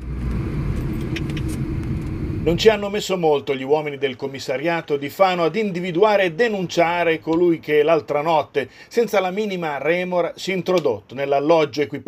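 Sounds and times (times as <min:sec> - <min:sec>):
car engine and road rumble: 0:00.0 - 0:03.1.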